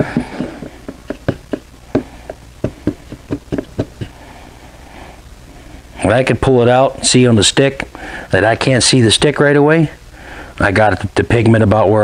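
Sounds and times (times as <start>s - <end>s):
stick knocking in plastic cup: 0.8s - 4.2s.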